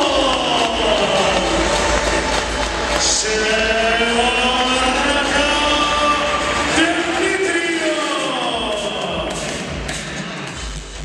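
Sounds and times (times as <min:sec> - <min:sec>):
amplified voice chanting: 0:00.0 - 0:09.8.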